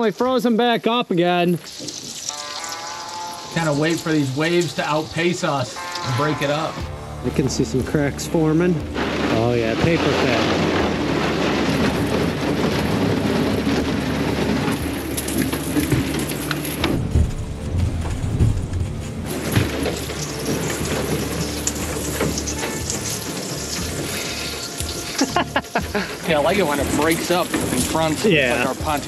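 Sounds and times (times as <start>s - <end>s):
low rumble: 5.7s - 28.8s
ice cracking against boat: 7.3s - 29.0s.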